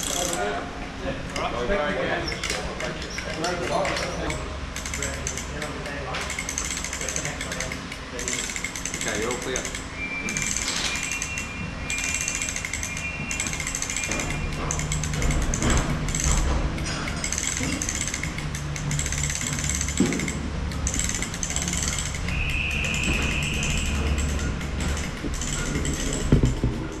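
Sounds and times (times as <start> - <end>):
mechanical rattling: 0.0 - 0.5, 2.2 - 27.0.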